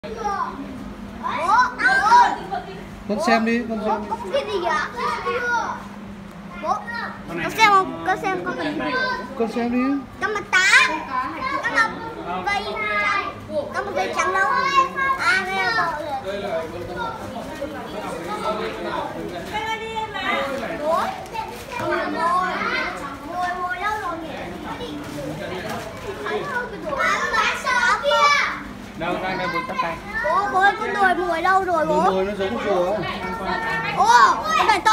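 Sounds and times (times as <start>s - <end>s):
steady low hum: 0.0s - 20.1s
children talking and calling out: 0.0s - 34.9s.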